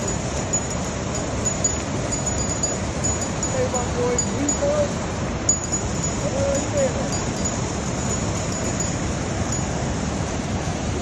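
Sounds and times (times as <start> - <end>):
thin high tinkling tones: 0.0 - 9.9
steady outdoor rushing noise: 0.0 - 11.0.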